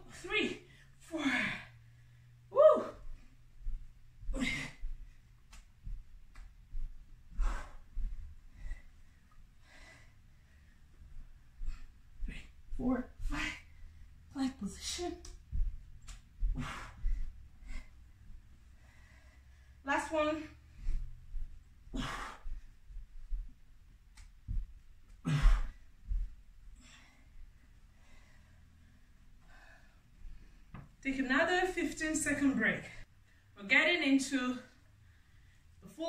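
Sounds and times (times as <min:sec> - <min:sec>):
soft low thumps: 0:01.5 - 0:28.2
person breathing hard: 0:07.3 - 0:12.6, 0:16.4 - 0:19.8, 0:20.5 - 0:23.1, 0:24.5 - 0:30.7
dull low thump: 0:15.4 - 0:17.3, 0:24.4 - 0:26.4.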